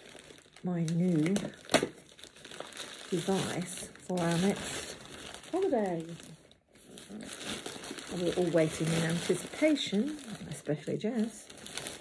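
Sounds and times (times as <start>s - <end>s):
plastic bag crinkling: 0.0s - 12.0s.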